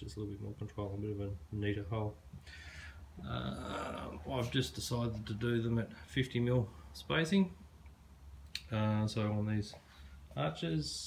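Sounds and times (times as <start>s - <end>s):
man talking: 0.0s - 2.2s, 3.2s - 7.6s, 8.6s - 11.0s.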